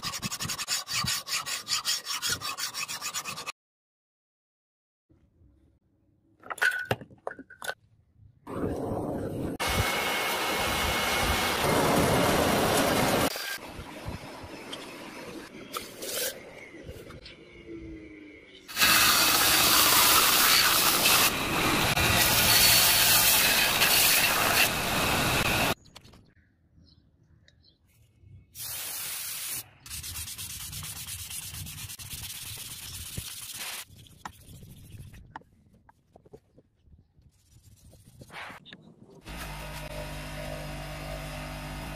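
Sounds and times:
sandpaper rubbing on steel: 0:00.0 - 0:03.5, 0:22.1 - 0:25.5, 0:28.6 - 0:35.2
air blower rushing roar: 0:09.6 - 0:13.3
belt grinder sanding steel: 0:18.7 - 0:25.8
aerosol spray hiss: 0:28.6 - 0:29.6.

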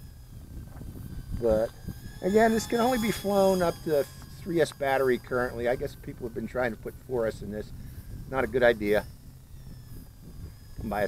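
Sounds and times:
high whine of drone motors: 0:00.0 - 0:11.0
low wind rumble on microphone: 0:00.0 - 0:11.0.

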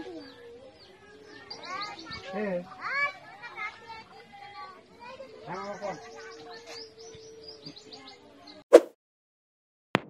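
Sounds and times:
birds chirping: 0:00.0 - 0:08.6
crowd voices: 0:00.0 - 0:08.6.

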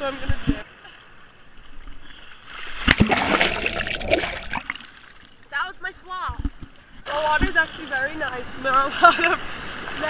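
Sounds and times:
water rushing: 0:00.0 - 0:10.0
loud water splash: 0:02.5 - 0:05.3.

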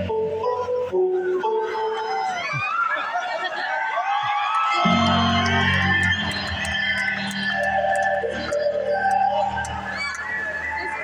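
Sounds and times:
distant live rock band: 0:04.7 - 0:11.0.

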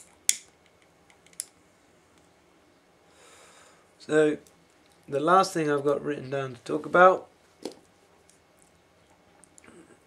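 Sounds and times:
soft breathy hiss: 0:03.0 - 0:04.0.

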